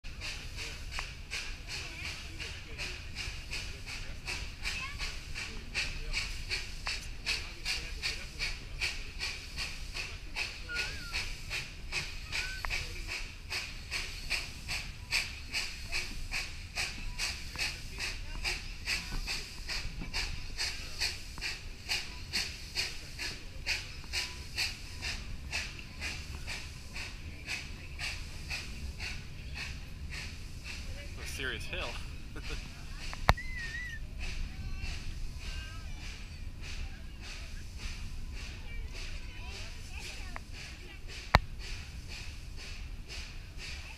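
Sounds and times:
train cars rumbling on rails: 0.0 - 43.9
hissing steam: 0.1 - 43.9
steam locomotive exhaust chuffs: 0.1 - 43.9.

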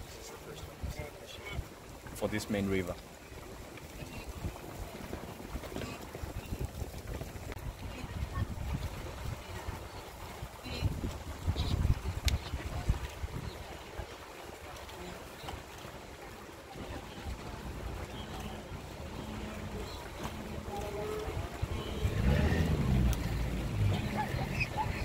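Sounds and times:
distant herd crossing a river: 0.0 - 25.0
wind buffeting microphone: 3.4 - 14.7, 16.7 - 25.0.

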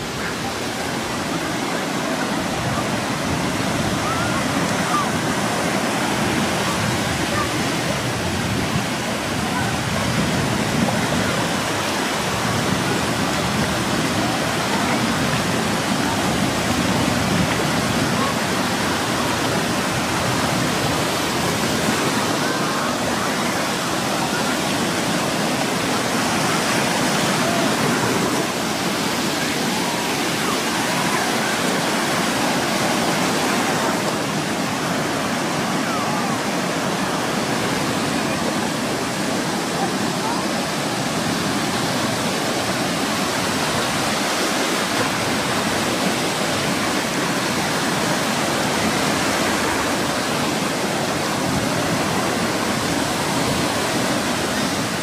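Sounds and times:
ocean surf breaking: 0.0 - 55.0.

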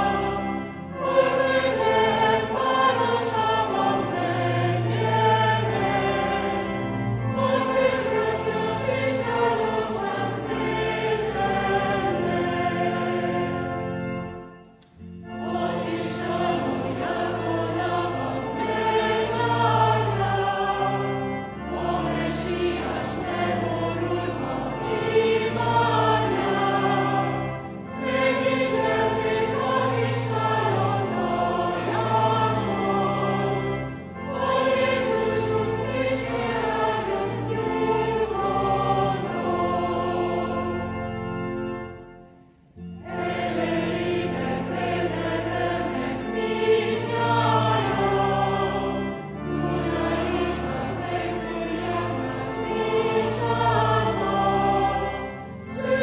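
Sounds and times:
choir singing a carol: 0.0 - 56.0.

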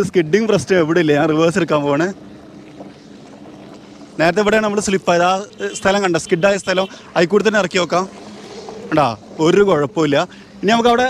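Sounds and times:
low hum: 0.6 - 11.0.

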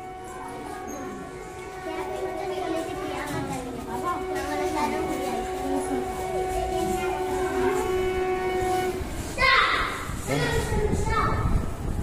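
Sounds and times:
train horn: 0.0 - 9.4
train running: 0.0 - 12.0.

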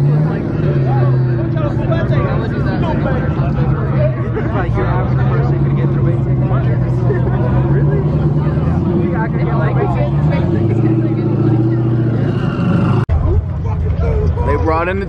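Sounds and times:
car engine running: 0.0 - 15.0
crowd chatter: 0.0 - 15.0.

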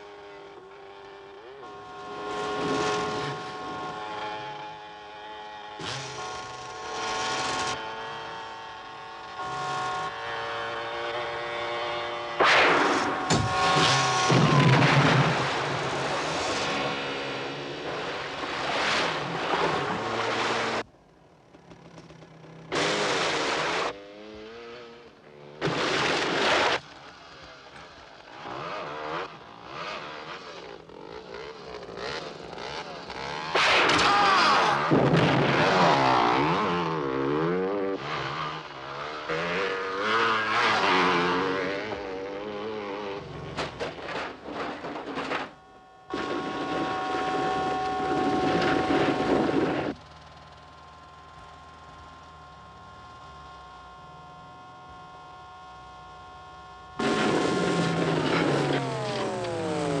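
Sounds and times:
vehicle engines revving: 0.0 - 60.0
sharp cracks: 12.4 - 15.9, 33.4 - 36.0.

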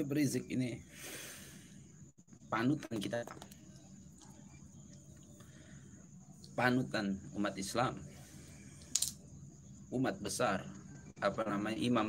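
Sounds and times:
faint low hum: 0.0 - 12.0
sharp click: 8.8 - 9.2.

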